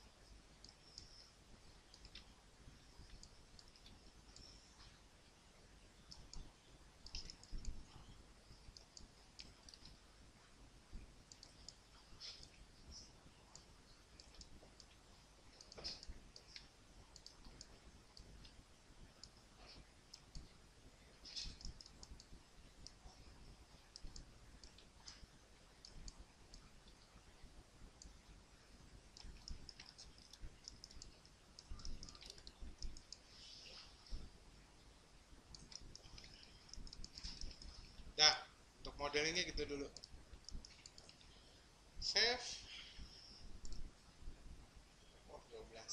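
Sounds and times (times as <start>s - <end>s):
low room hum: 0.0s - 45.9s
computer mouse clicks: 0.3s - 2.4s, 3.0s - 5.0s, 6.0s - 10.0s, 11.2s - 20.6s, 21.2s - 27.2s, 27.9s - 28.3s, 29.0s - 34.3s, 35.5s - 38.1s, 39.2s - 41.5s, 42.1s - 43.9s.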